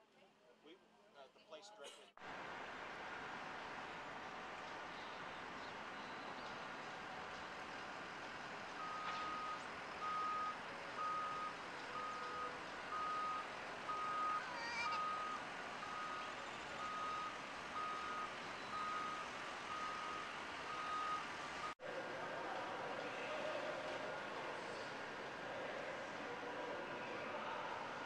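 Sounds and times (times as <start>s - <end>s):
street noise: 0.0s - 28.0s
reversing alarm beeping: 8.8s - 21.8s.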